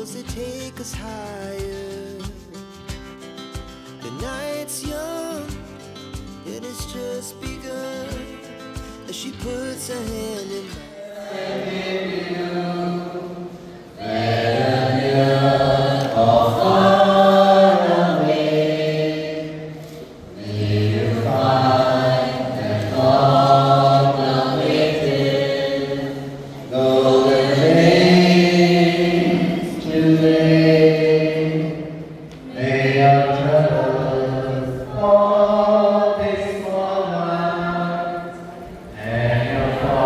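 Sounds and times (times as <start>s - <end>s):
group singing through microphones: 0.0s - 2.7s, 6.5s - 40.0s.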